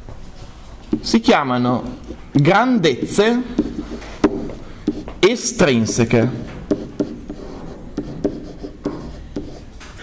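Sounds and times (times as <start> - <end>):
pen tapping and scratching: 0.8 - 10.0.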